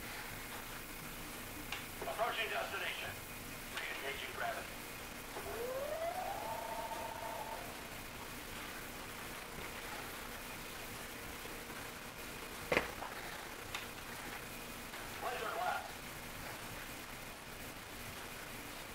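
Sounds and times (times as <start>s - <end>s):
toy electronic tone: 5.4s - 7.9s.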